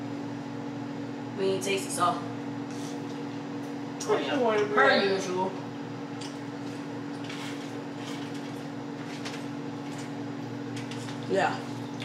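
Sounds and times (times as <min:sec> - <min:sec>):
kitchen appliance hum: 0:00.0 - 0:12.0.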